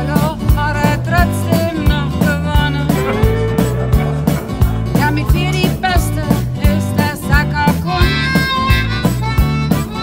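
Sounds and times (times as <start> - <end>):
banjo: 0.0 - 10.0
folk-rock band playing: 0.0 - 10.0
strummed guitars: 0.0 - 10.0
drum kit steady beat: 2.3 - 7.5
harmonica long held notes: 2.9 - 6.9.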